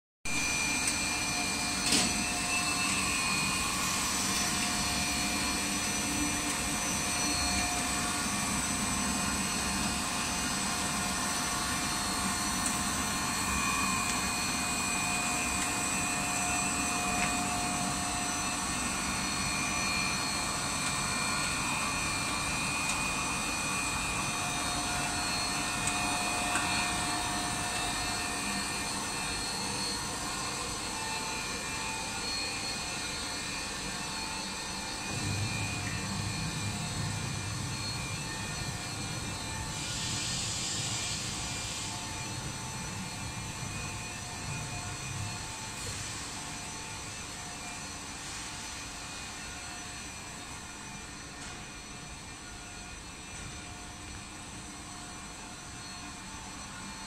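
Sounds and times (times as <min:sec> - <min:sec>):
steady whining tones: 0:00.3 - 0:57.0
machine motors humming: 0:00.4 - 0:47.8
deeper hum: 0:34.9 - 0:39.7.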